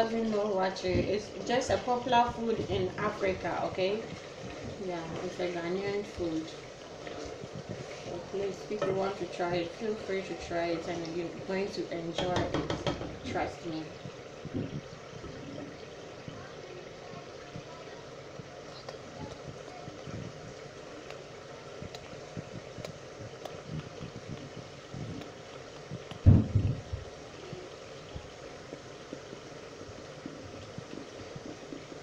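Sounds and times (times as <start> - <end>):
sauce bubbling in a saucepan: 0.0 - 32.0
thump: 26.2 - 26.8.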